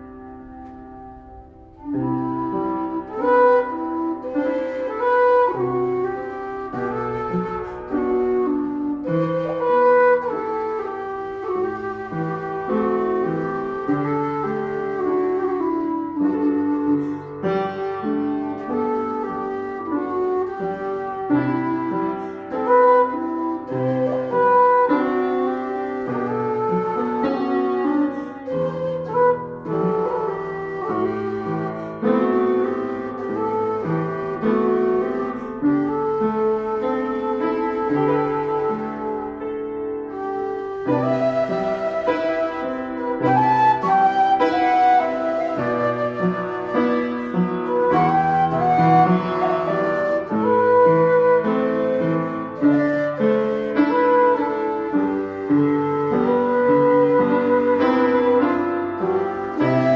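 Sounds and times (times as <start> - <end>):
low whistle melody: 0.0 - 59.9
upright piano chords: 0.0 - 59.9.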